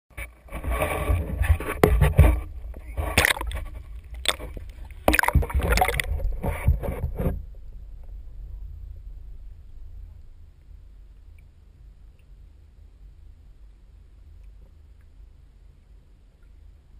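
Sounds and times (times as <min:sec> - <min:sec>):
water splashing and sloshing: 0:00.1 - 0:12.7
muffled underwater hush: 0:00.2 - 0:16.9
low rumble: 0:00.4 - 0:16.9.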